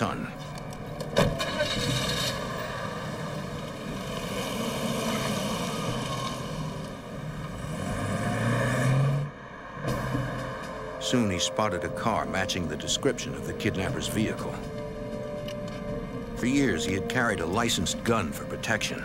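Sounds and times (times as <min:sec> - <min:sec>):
car engine accelerating: 0:00.6 - 0:11.1.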